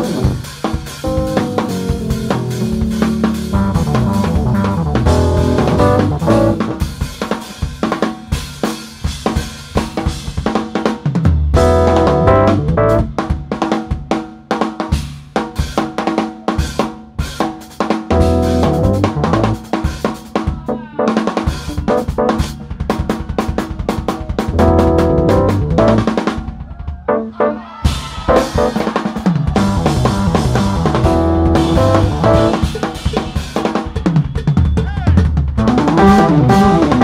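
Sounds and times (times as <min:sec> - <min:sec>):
bass line: 0:00.0 - 0:06.8, 0:11.6 - 0:13.1, 0:18.1 - 0:19.6, 0:24.5 - 0:26.2, 0:29.5 - 0:32.6, 0:35.6 - 0:37.0
jazz fusion band playing: 0:00.0 - 0:07.4, 0:11.6 - 0:13.3, 0:18.1 - 0:26.4, 0:27.0 - 0:33.8, 0:35.3 - 0:37.0
drum fills and rimshots: 0:00.0 - 0:37.0.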